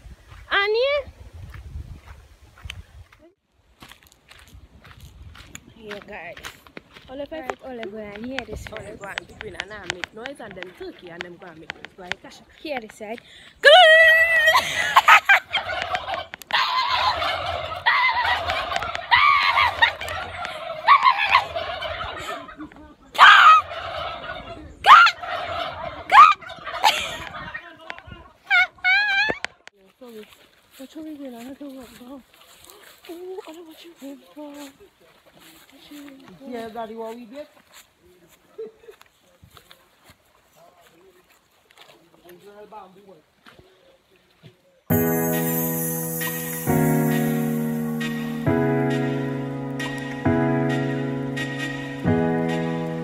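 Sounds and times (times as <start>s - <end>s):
turkeys gobbling: 14.5s - 27.6s.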